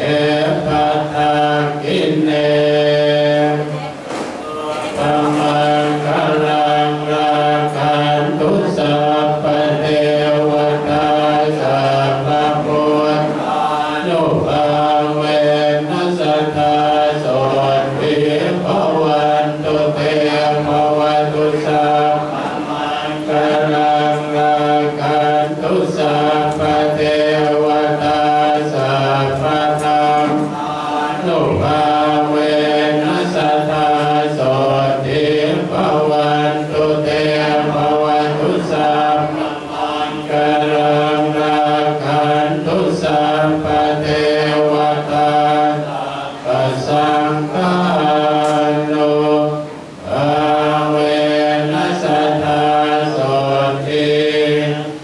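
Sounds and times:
monks chanting in unison: 0.0 - 55.0.

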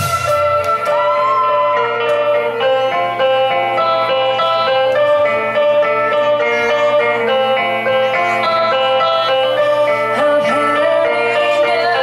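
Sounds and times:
guitar melody: 0.0 - 12.0
live rock band playing: 0.0 - 12.0.

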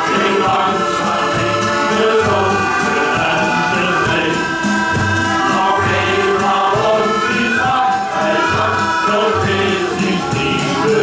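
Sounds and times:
men's choir singing sea song: 0.0 - 11.0.

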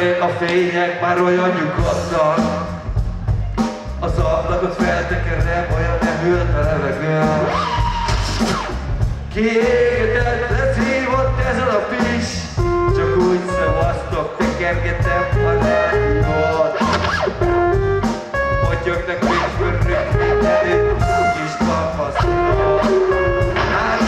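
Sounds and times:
live band music: 0.0 - 24.0
bass and drum beat: 1.7 - 24.0
melodic guitar line: 12.6 - 24.0.

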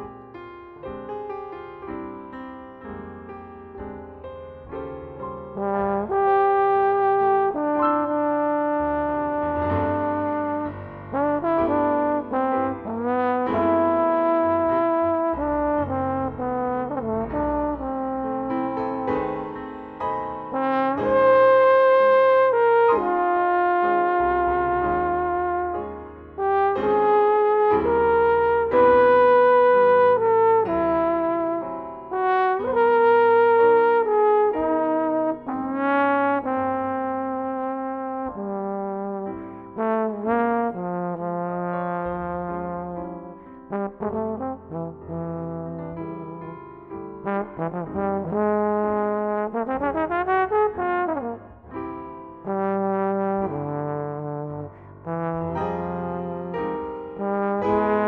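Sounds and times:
soft low accompaniment: 0.0 - 58.0
jazz trombone melody: 5.3 - 58.0.

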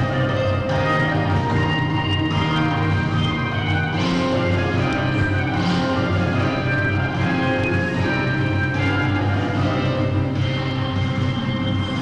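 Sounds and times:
children's choir singing: 0.0 - 10.2
instrumental accompaniment: 0.0 - 12.0.

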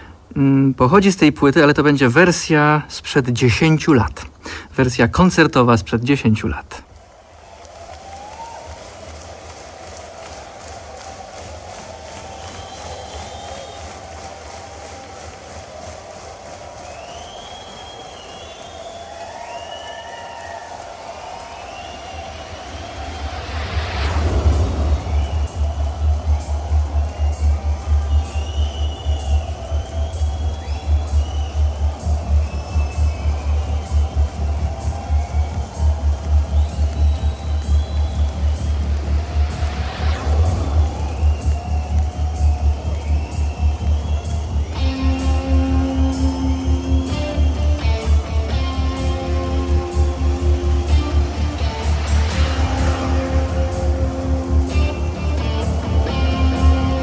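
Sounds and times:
crowd noise: 5.0 - 57.0
audience whistles: 7.4 - 57.0
cymbal swell: 22.1 - 31.7, 37.6 - 43.2
pulsing low bass line: 22.8 - 57.0.

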